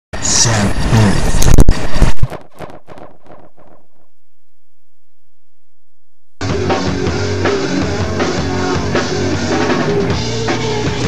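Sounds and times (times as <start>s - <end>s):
harsh distorted logo sting: 0.2s - 4.2s.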